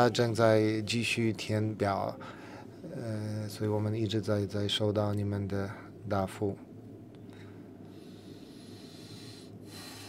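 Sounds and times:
low electrical hum: 0.0s - 10.0s
even hiss: 7.3s - 10.0s.

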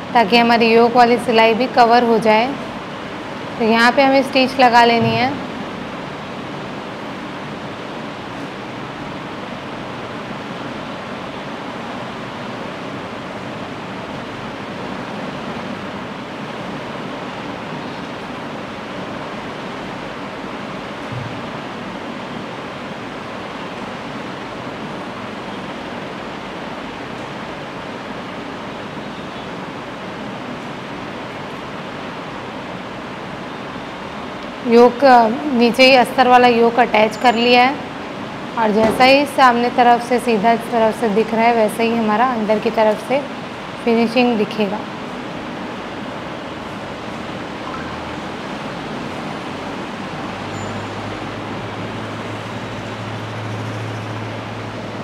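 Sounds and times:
steady background hiss: 0.0s - 55.0s.

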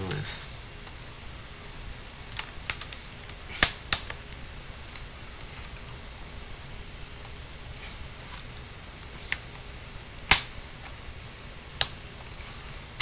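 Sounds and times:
plastic clips snapping: 10.3s - 11.0s.

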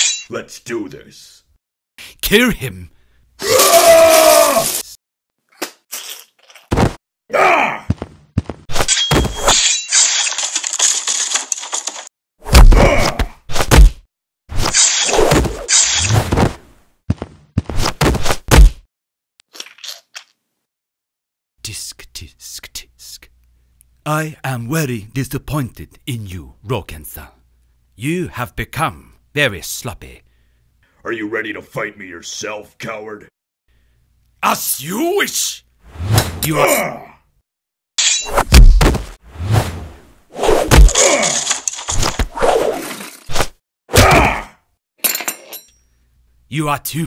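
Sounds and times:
fight hits and thuds: 6.7s - 7.0s, 12.5s - 18.9s, 38.4s - 39.8s, 40.5s - 42.4s, 43.4s - 44.5s.

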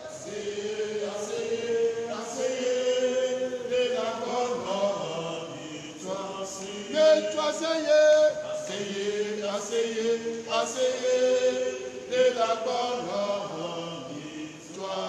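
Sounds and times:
man chanting: 6.8s - 8.6s.

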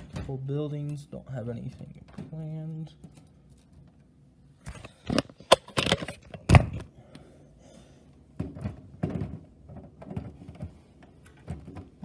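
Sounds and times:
hard plastic clattering: 4.6s - 6.9s, 8.3s - 12.0s.

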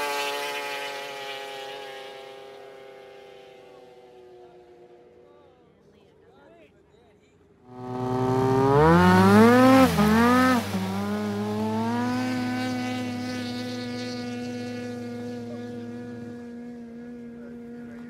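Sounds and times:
snowmobile engine revving: 0.0s - 4.6s, 7.7s - 18.0s.

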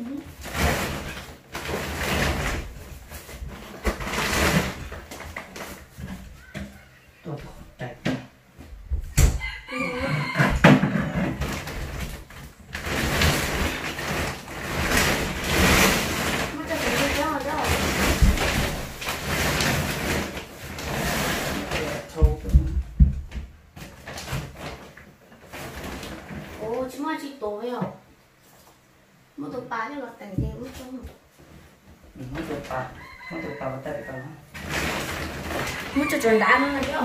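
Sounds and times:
plastic bags rustling and scraping: 0.0s - 7.7s, 9.4s - 22.8s, 23.7s - 27.1s, 30.4s - 37.0s
knocks and thuds against wood: 0.4s - 20.5s, 22.0s - 24.8s.

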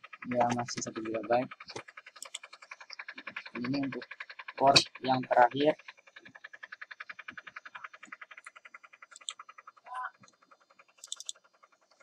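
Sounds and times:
frog-like croaking call: 0.0s - 11.6s
faint high clicks: 11.0s - 11.4s.

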